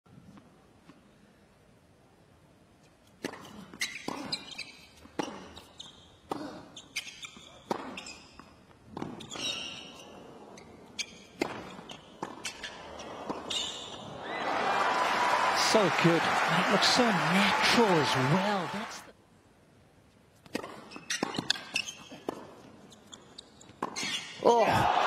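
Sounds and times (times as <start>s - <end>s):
tennis ball bouncing on court: 7.2s - 9.4s, 11.3s - 14.1s, 20.4s - 24.1s.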